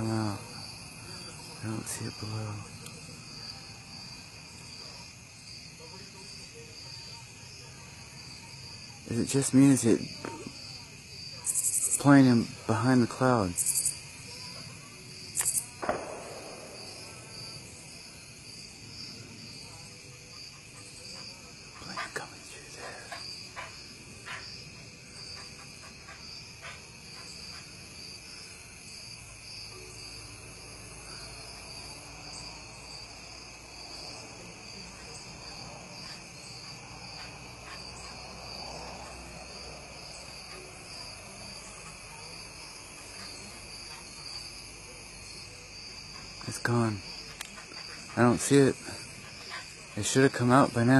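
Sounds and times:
insect chorus: 0.0 - 50.9.

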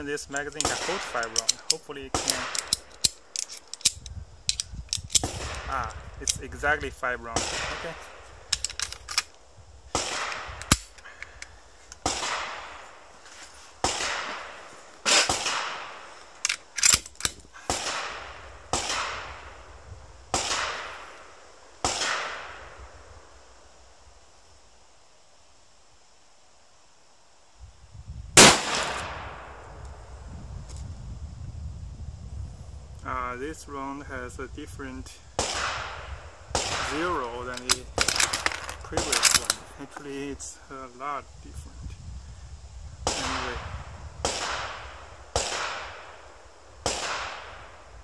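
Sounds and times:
rifle gunshots with echo: 0.6 - 2.6, 7.3 - 8.0, 28.4 - 29.4, 43.1 - 43.6, 45.4 - 46.1, 46.8 - 47.6
loud sharp rifle shot close by: 28.4 - 29.6.

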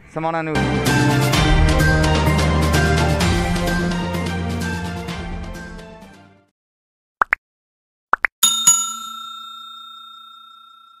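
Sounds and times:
bright bell ding: 8.4 - 11.0.

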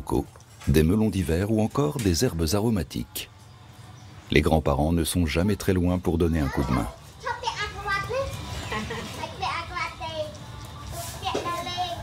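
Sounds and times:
children chattering: 6.3 - 12.0.

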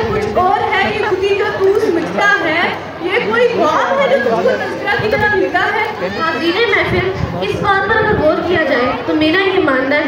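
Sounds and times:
background chatter: 0.0 - 10.0
girl talking into a microphone: 0.0 - 10.0.

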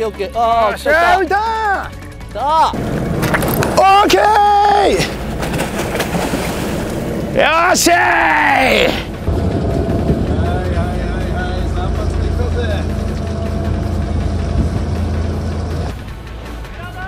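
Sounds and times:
boat engine droning: 2.8 - 16.6.

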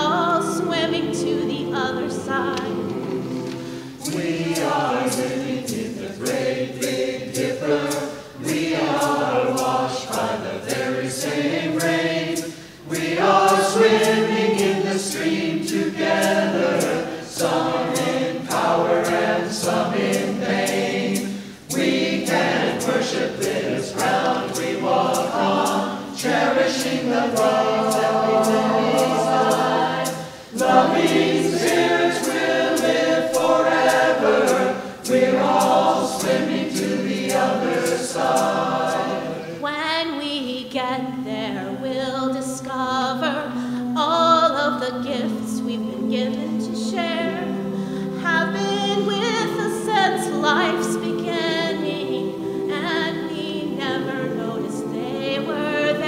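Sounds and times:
mixed choir singing: 0.0 - 40.2, 40.8 - 56.0.

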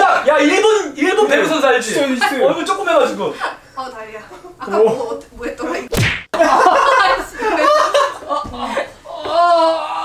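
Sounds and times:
sharp slap: 5.9 - 6.4
people laughing: 6.4 - 9.0.

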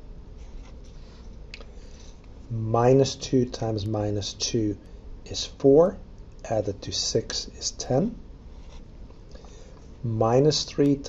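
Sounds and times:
marker writing on paper: 8.6 - 8.9.

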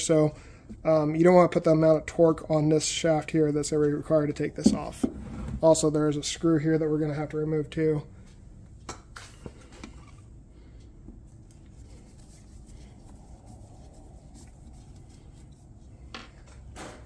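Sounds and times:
low steady background hum: 0.0 - 17.0.

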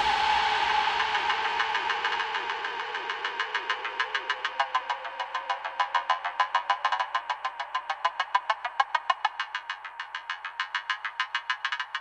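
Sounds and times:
noisy drone: 0.0 - 3.4.

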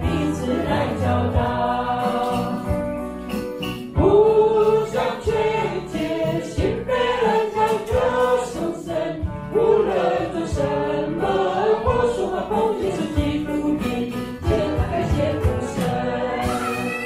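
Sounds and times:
mixed choir singing: 0.0 - 3.0, 4.0 - 17.0.

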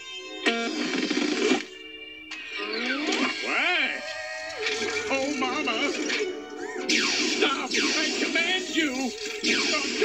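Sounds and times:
cartoon sound effect: 6.6 - 8.2.

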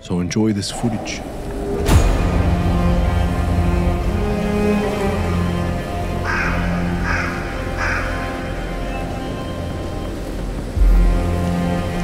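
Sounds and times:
slow dark background music: 0.0 - 12.0
low boom: 1.4 - 4.3
crow cawing: 6.1 - 8.8.

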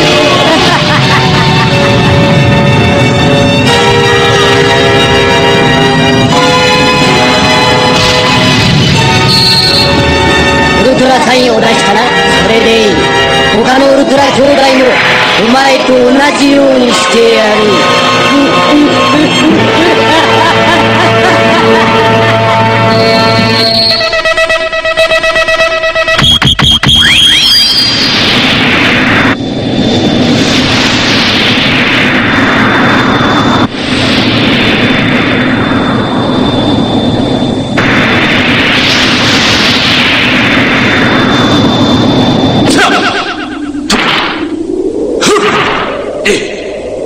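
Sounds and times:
low drone: 0.0 - 26.1, 27.6 - 47.0
steady high tone: 0.0 - 31.3
whooshes falling in pitch: 0.0 - 47.0
electronic beeps and zaps: 8.6 - 10.1, 22.8 - 44.6.

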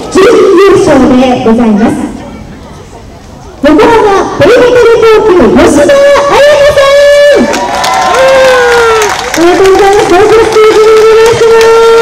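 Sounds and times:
crowd cheering: 7.1 - 12.0.

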